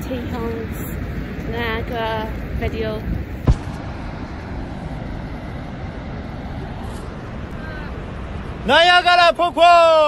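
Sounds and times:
wind on microphone: 0.0s - 8.6s
sharp knock: 3.5s - 3.8s.

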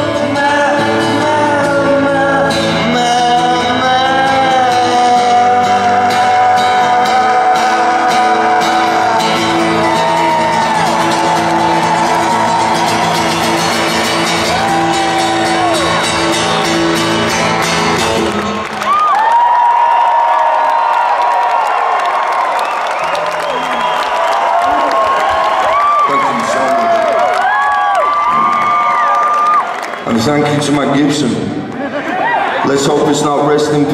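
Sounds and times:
acoustic guitar chords: 0.0s - 18.8s
crowd cheering and shouting: 4.1s - 33.9s
audience whooping: 7.6s - 30.6s, 31.7s - 32.8s.

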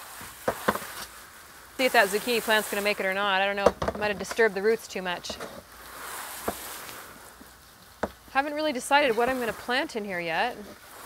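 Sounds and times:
hose spray falling on soil: 0.0s - 11.0s.

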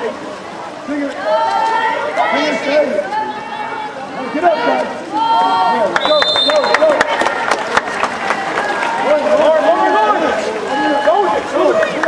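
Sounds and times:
people shouting: 1.2s - 5.9s.

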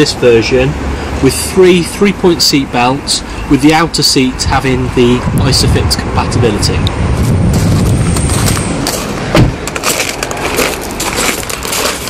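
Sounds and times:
footsteps crunching on gravel: 7.2s - 12.0s
car door thump: 9.3s - 9.6s.

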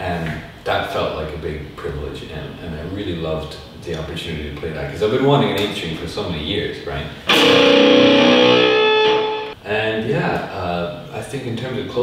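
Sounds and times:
electric guitar chord ringing: 7.3s - 9.6s.

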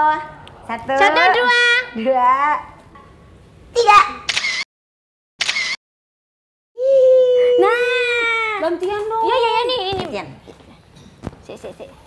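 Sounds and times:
phone camera shutter clicks: 4.3s - 4.7s, 5.4s - 5.8s.

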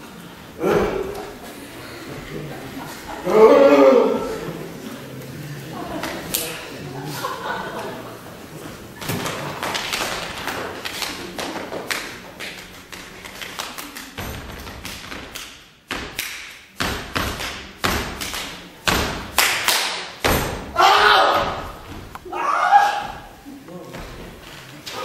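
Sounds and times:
body percussion slaps and taps: 9.6s - 20.6s.

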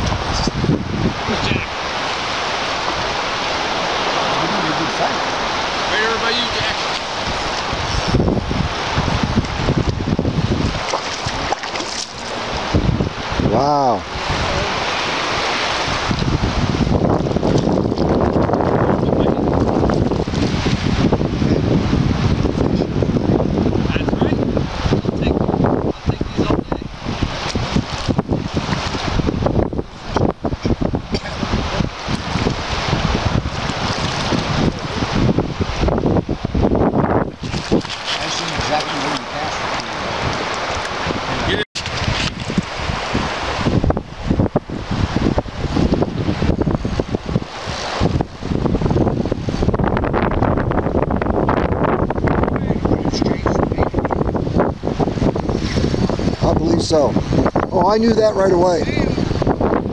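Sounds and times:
wind buffeting microphone: 0.0s - 59.9s.

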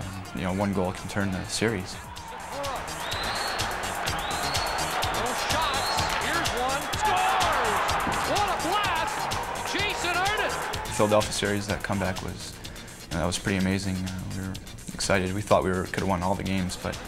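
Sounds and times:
music track with steady beat: 0.0s - 17.0s
crowd cheering and yelling: 0.2s - 12.3s.

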